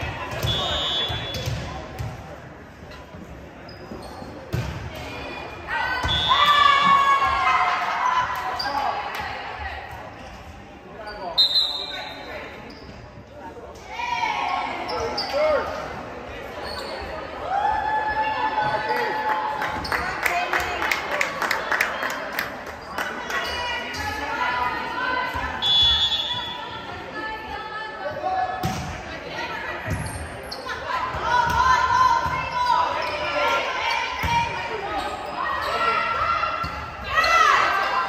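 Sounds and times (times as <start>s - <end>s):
players shouting and cheering: 4.9s - 9.9s, 17.2s - 22.4s, 30.6s - 38.0s.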